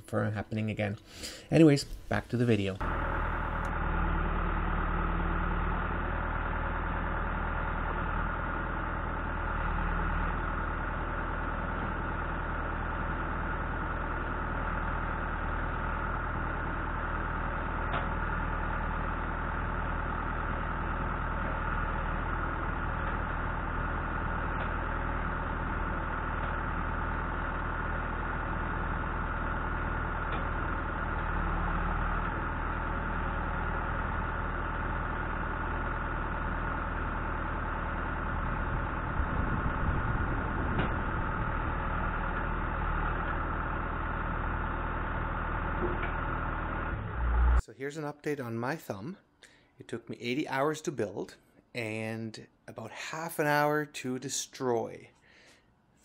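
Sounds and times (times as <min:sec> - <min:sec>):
diesel engine running: 0:00.9 - 0:47.6.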